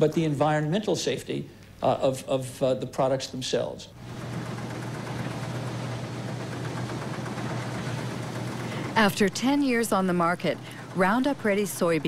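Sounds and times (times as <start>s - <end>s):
combine harvester running: 4.0s - 12.0s.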